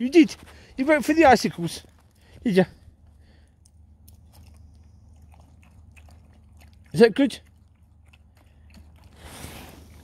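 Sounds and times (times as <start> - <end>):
dog drinking crunching ice: 3.7 - 10.0.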